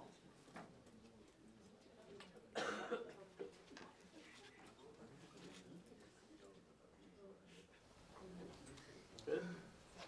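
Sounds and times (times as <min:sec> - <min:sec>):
faint room noise: 0:00.0 - 0:10.0
person coughing: 0:02.5 - 0:03.2, 0:09.3 - 0:09.7.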